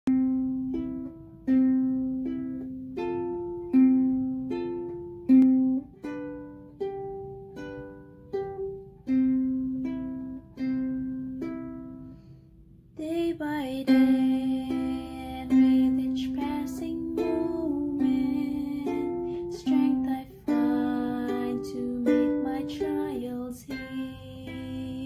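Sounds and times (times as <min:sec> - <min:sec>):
ukulele strumming chords: 0:00.1 - 0:12.4, 0:13.1 - 0:25.0.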